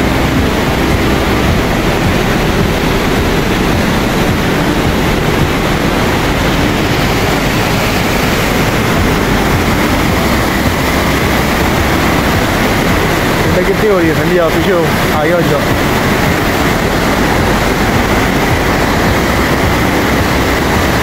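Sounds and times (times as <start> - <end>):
turbulent mountain stream rushing: 0.0 - 21.0.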